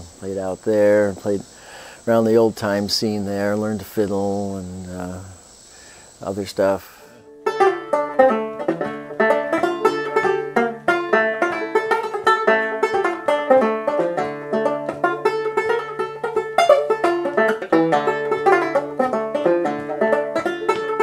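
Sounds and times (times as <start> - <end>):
fingerpicked banjo tune: 6.4 - 21.0.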